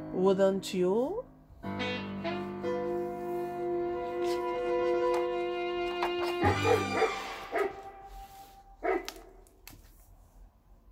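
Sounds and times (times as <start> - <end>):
held music chord: 1.6 - 8.8
dog barking: 6.4 - 8.1, 8.8 - 9.4.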